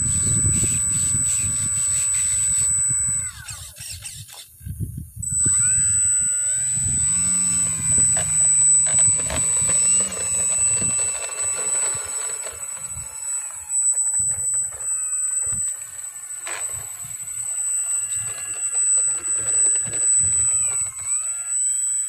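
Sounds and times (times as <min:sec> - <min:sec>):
electric motor and propeller whining: 0:00.0 - 0:22.0.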